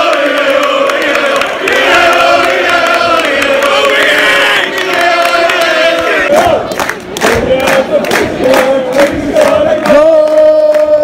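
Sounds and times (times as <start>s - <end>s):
football crowd chanting: 0.0s - 10.2s.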